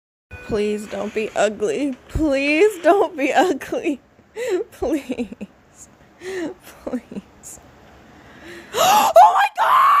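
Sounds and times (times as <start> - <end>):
person screaming: 8.8 - 10.0.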